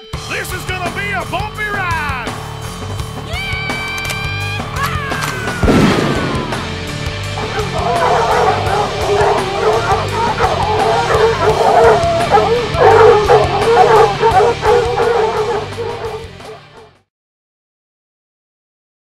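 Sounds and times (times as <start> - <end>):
beagles baying: 3.6 - 17.0
intro music: 5.6 - 17.0.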